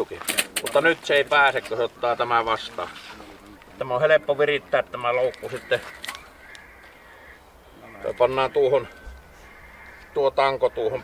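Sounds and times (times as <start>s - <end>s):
bird calling: 0.0s - 11.0s.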